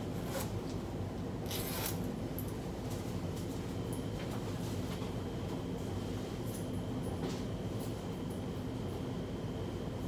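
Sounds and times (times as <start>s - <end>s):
low room hum: 0.0s - 10.0s
jacket unfastening rasp: 1.4s - 2.0s.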